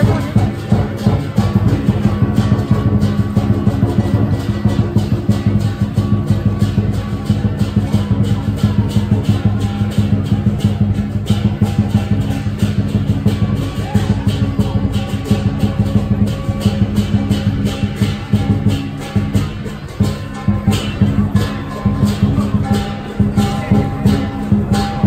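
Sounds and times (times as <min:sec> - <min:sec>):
cymbals clashing: 0:00.0 - 0:25.0
large drum beating: 0:00.0 - 0:25.0.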